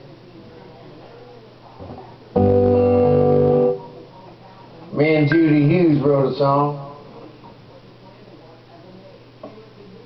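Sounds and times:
acoustic guitar chord strummed: 2.4 - 4.0.

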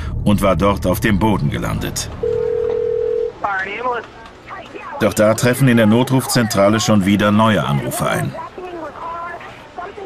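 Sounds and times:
steady telephone tone: 2.2 - 3.4.

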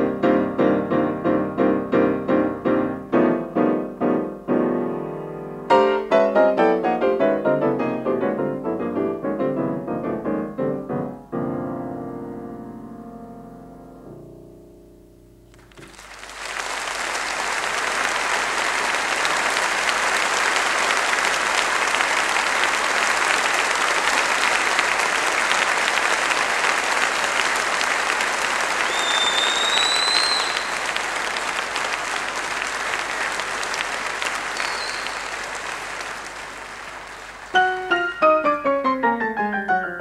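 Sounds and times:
audience applauding: 15.5 - 38.5
rising whistle from crowd: 28.8 - 30.8, 34.5 - 35.4.

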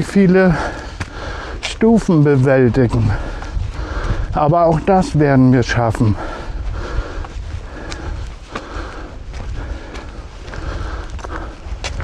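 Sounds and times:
footsteps on gravel: 0.0 - 12.0
low wind rumble: 0.0 - 12.0.

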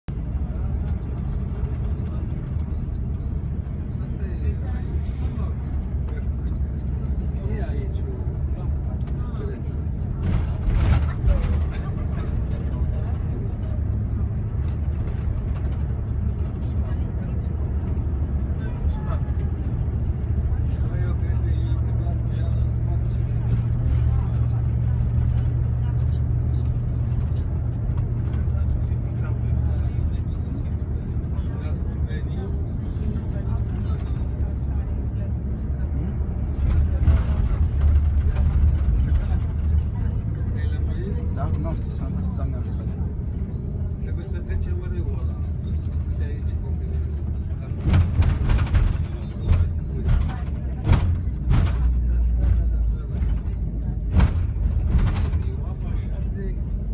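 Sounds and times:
vehicle engine and road rumble: 0.0 - 56.9.

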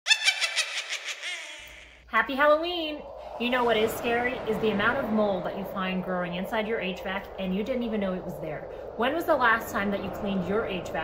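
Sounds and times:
high-pitched cackling laugh: 0.1 - 2.0.

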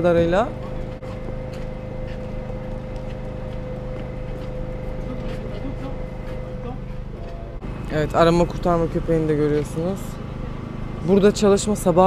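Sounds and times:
machine engine humming: 0.0 - 12.0.

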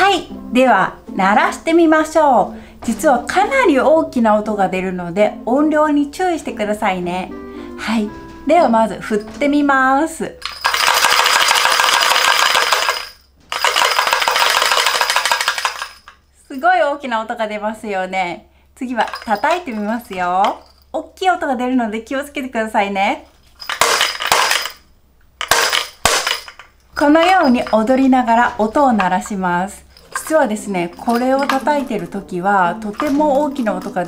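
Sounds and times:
hand drum bells rattling: 10.3 - 16.2, 19.0 - 20.9, 23.5 - 24.8, 25.4 - 34.0
hand drums cracking: 25.4 - 27.1.

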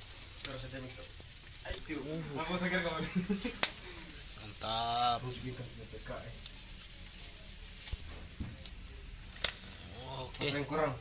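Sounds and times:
fish sizzling on a charcoal grill: 0.0 - 11.0.

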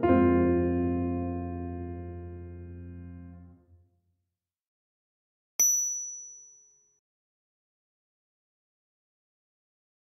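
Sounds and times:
high-pitched ding: 5.6 - 6.9.

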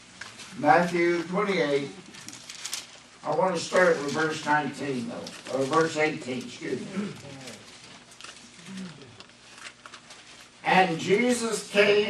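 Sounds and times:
man murmuring: 6.7 - 7.7.

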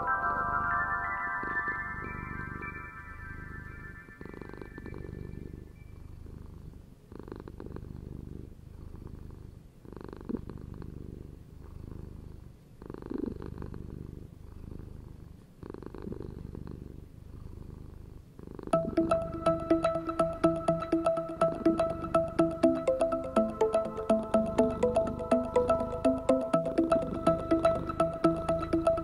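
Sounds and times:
cat purring: 3.3 - 18.8.

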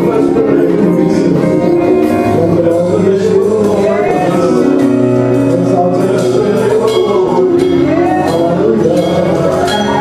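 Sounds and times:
gospel worship music with keyboard: 0.0 - 10.0.

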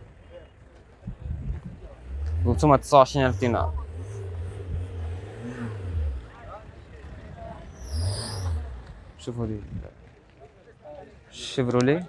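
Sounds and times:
faint voices: 0.0 - 12.0
wind buffeting microphone: 1.0 - 2.8, 8.7 - 10.0.

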